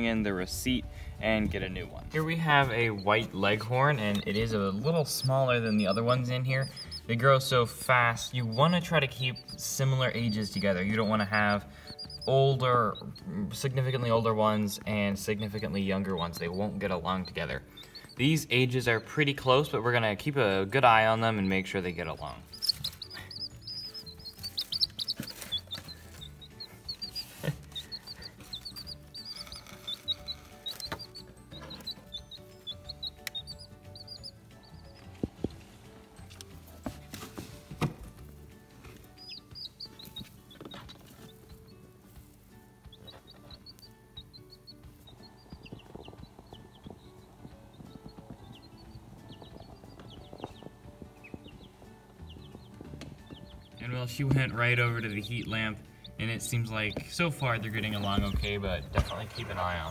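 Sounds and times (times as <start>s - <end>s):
baby chicks peeping: 0.0s - 59.9s
background music: 0.0s - 59.9s.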